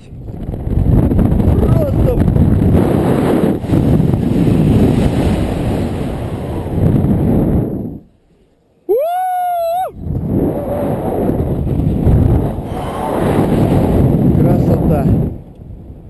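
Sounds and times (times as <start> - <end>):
wind buffeting microphone: 0.0 - 8.2, 9.7 - 16.0.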